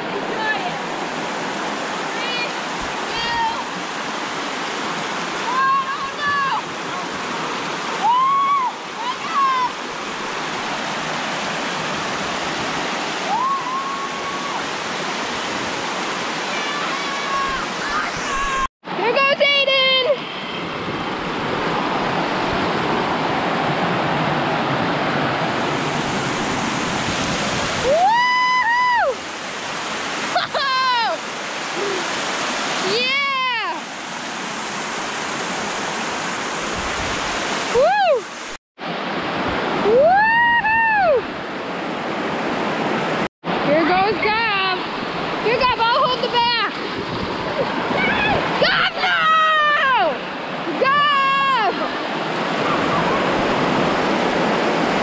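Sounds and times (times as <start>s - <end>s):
children shouting and whooping: 16.6s - 18.7s, 47.9s - 50.2s.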